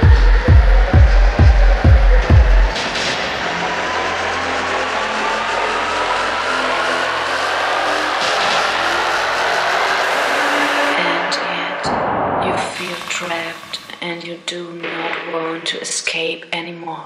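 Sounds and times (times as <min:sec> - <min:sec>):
synth riser sweeping upward: 0:00.0 - 0:11.0.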